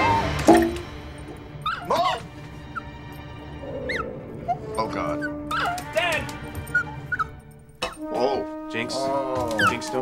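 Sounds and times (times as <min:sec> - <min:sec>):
soft background music: 0:00.0 - 0:10.0
small dog crying: 0:01.6 - 0:02.2, 0:05.2 - 0:05.9, 0:06.7 - 0:08.0.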